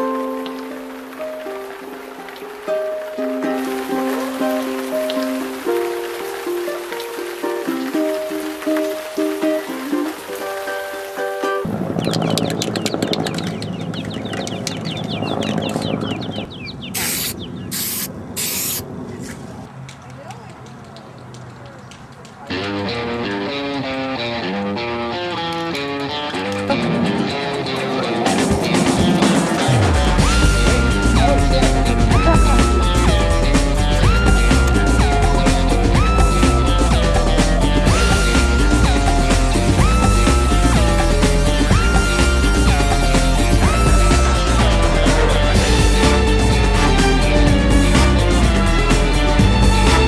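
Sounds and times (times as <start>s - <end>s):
background music: 0.0s - 14.6s, 22.5s - 50.0s
aerosol spray can hisses: 17.0s - 18.8s.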